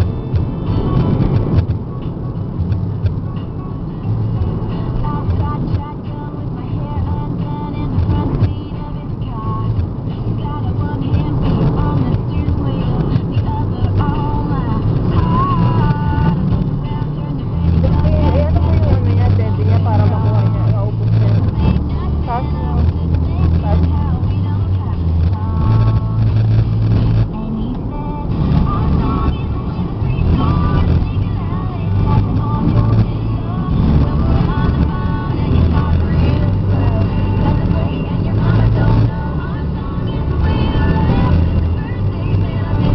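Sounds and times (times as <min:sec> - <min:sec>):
music with bass notes: 0:00.0 - 0:42.9
road and engine rumble: 0:00.0 - 0:42.9
person's voice: 0:17.7 - 0:24.7.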